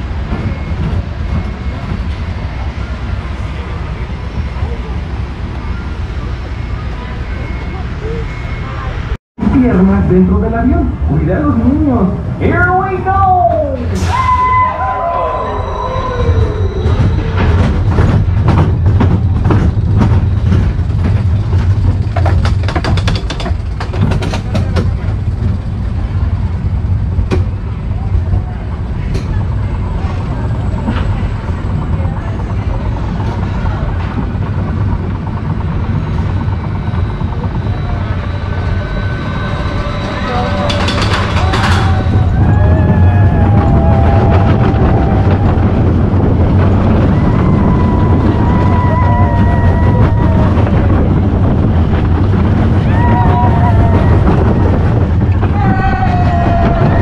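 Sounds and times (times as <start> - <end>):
roller coaster wheels rumbling: 0.0 - 57.0
wind: 0.0 - 57.0
clattering: 17.4 - 25.4, 40.5 - 42.1.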